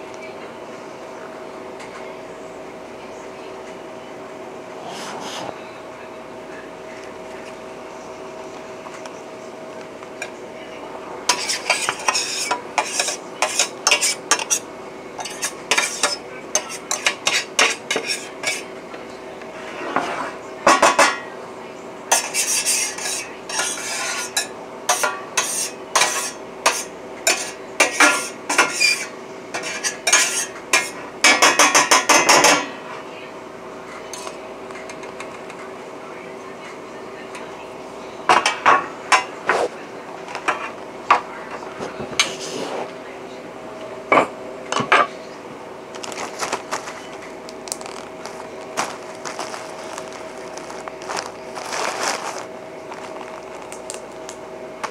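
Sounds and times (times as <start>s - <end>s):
steady hum: 0.0s - 28.5s, 38.9s - 54.9s.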